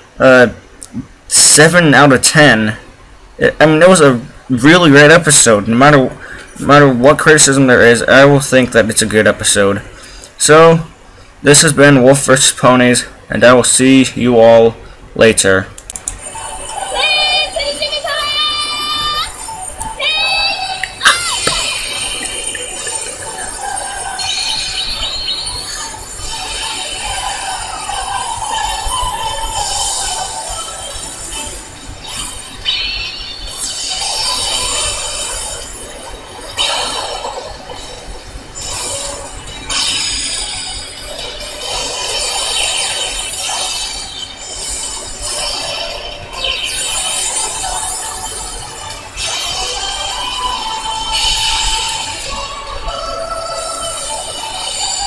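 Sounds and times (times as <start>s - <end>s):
glassy sparkle and chime effects: 20.9s - 52.7s.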